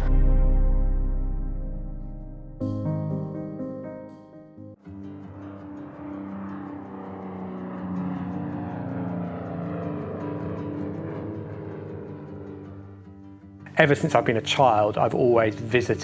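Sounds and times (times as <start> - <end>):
propeller aircraft flying past: 4.7 - 16.0.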